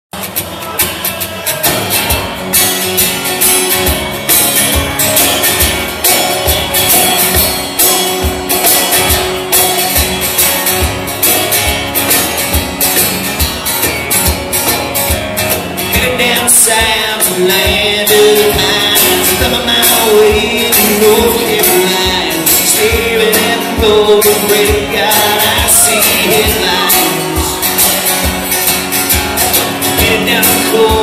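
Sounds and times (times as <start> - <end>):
hand percussion beat: 0.2 - 31.0
strummed acoustic guitar: 0.2 - 31.0.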